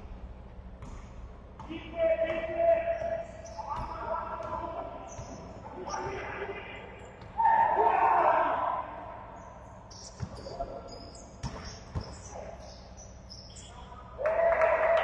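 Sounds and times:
sneakers squeaking on floor: 0.4s - 6.3s, 9.4s - 14.2s
basketball thumping on court: 0.7s - 5.5s, 11.4s - 12.3s.

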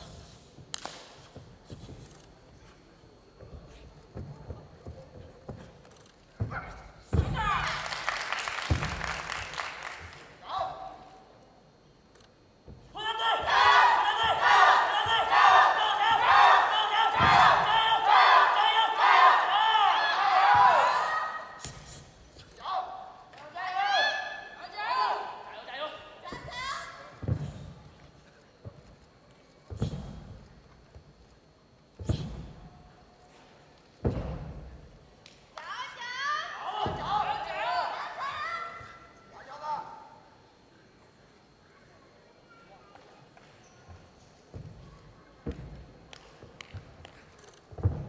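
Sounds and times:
quiet hall ambience: 0.0s - 48.0s
high-pitched shouts: 12.9s - 21.6s, 35.6s - 39.1s
body thudding on mat: 34.0s - 34.8s.

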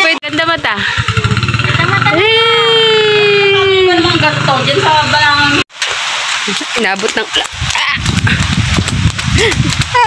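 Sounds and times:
rain falling: 0.6s - 10.0s
wind buffeting microphone: 7.4s - 10.0s.

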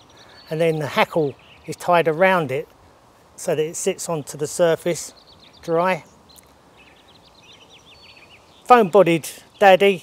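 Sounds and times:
birds chirping: 0.0s - 10.0s
low steady outdoor hiss: 0.0s - 10.0s.

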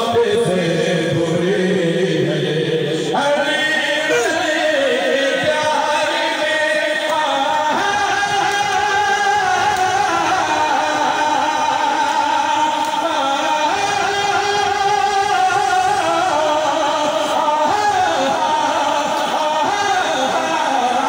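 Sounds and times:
man singing through loudspeakers: 0.0s - 21.0s.

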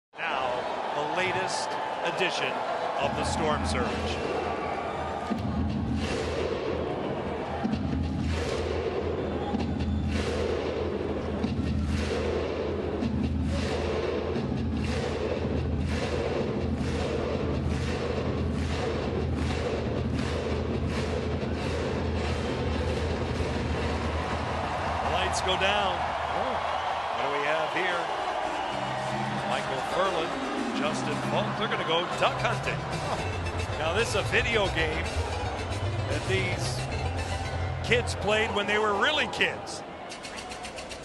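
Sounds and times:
arena music with low drone: 7.6s - 39.3s.

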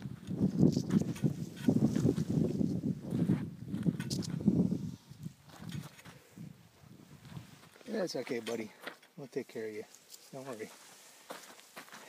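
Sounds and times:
footsteps crunching on dirt road: 0.0s - 6.2s, 9.9s - 12.0s.

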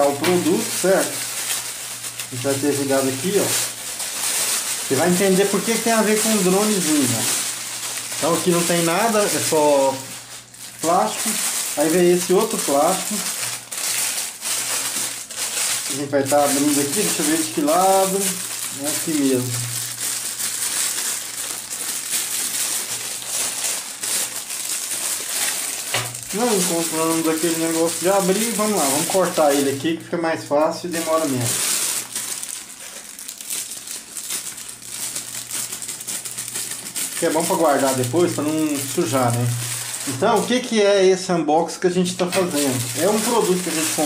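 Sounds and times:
plastic bag crinkling: 0.0s - 41.0s, 41.9s - 44.0s.

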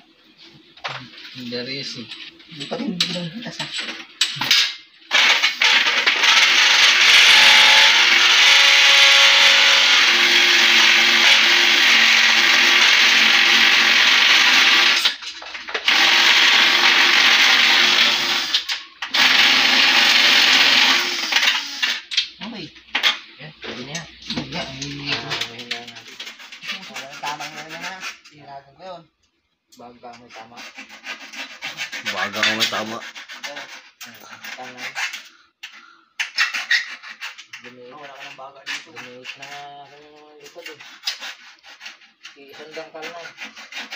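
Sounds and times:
cordless power drill running: 5.1s - 15.2s, 15.8s - 22.0s.

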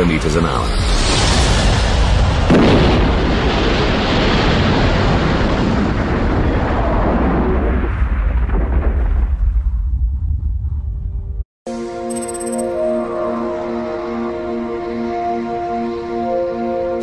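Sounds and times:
loud explosive impact: 0.9s - 11.0s.

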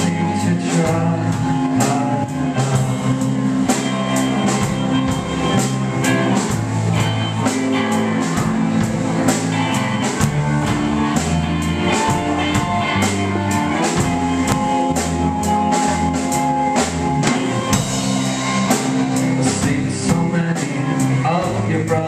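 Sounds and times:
drum kit beat: 0.0s - 22.0s
electric guitars: 0.0s - 22.0s.

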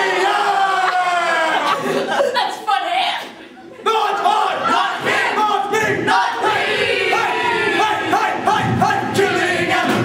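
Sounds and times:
group singing loudly: 3.9s - 10.0s.

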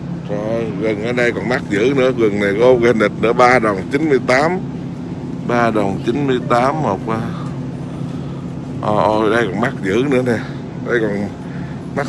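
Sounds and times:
refrigerated display case humming: 0.0s - 12.0s
faint store background noise: 0.2s - 12.0s.

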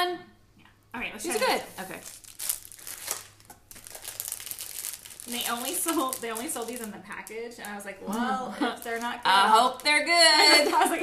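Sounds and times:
cellophane packaging crinkling: 1.2s - 11.0s.

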